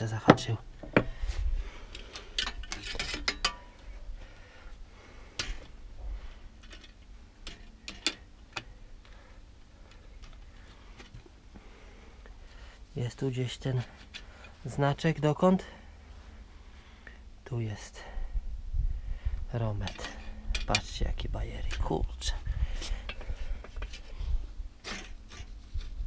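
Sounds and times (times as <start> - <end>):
metallic clicks of bicycle parts: 1.9 - 3.7, 5.4 - 5.7, 6.6 - 8.8, 19.8 - 21.0.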